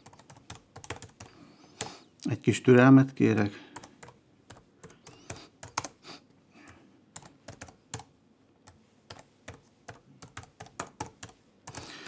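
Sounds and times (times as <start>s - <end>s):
typing on a computer keyboard: 0.0s - 1.9s, 3.8s - 6.0s, 6.6s - 12.0s.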